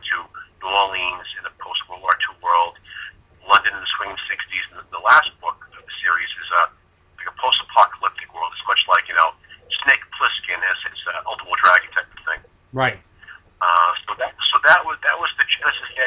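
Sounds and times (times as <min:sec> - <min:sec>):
person talking over telephone: 0:00.0 - 0:16.0.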